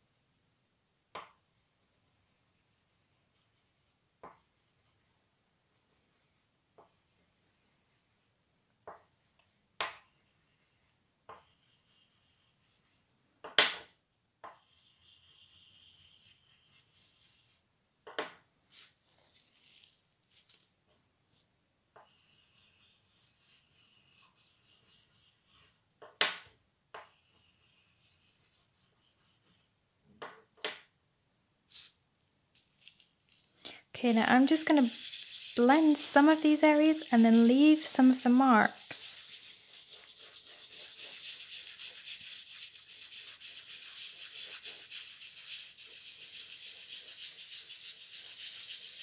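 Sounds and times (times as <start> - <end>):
oil pastel scratching on paper: 1.2 - 17.7, 18.7 - 20.7, 21.3 - 26.2, 26.9 - 29.8, 31.7 - 49.0.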